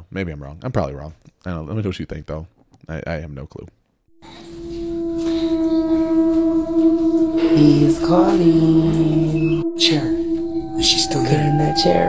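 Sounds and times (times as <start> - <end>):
steady droning note: 4.1 - 12.0.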